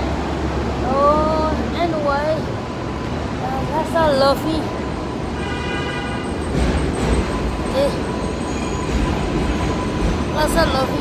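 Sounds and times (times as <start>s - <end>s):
city street traffic rumble: 0.0s - 11.0s
high-pitched vehicle whine: 0.0s - 11.0s.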